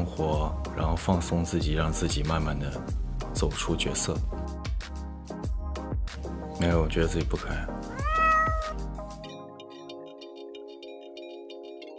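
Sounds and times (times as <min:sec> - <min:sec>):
background music: 0:00.0 - 0:11.9
cat meow: 0:07.9 - 0:08.8.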